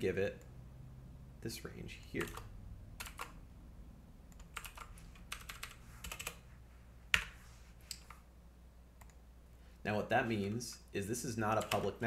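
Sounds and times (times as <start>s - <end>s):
quiet keyboard typing: 2.1s - 3.4s, 4.3s - 6.5s, 7.1s - 8.2s, 9.0s - 9.2s, 11.5s - 12.0s.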